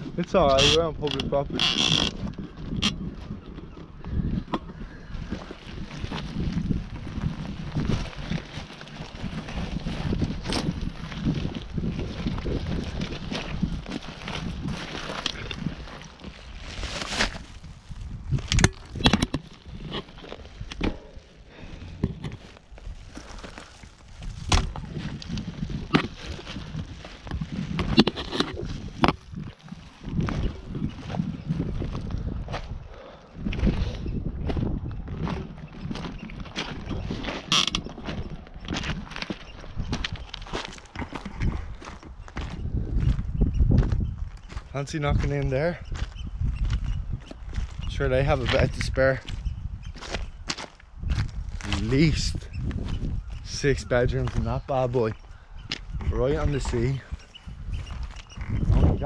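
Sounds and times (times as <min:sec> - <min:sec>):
bicycle and bags rattling: 0:00.0 - 0:50.4
bicycle tyres on stones: 0:00.2 - 0:32.8
footsteps crunching on stones: 0:00.2 - 0:59.0.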